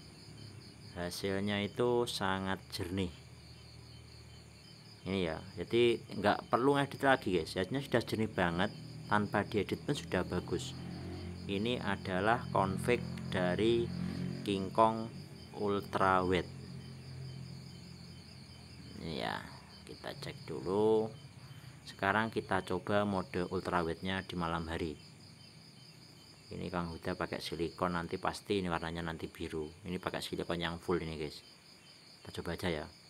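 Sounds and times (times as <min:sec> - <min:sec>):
night insects chirring: 0:00.0 - 0:33.0.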